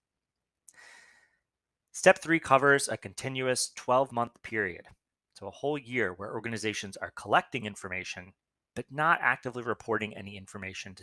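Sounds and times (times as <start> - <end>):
soft intake of breath: 0.7 - 1.4.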